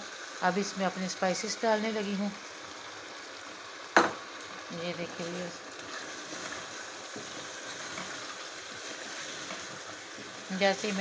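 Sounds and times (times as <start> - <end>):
chicken sizzling in a pot: 0.0 - 11.0
spatula stirring: 5.8 - 11.0.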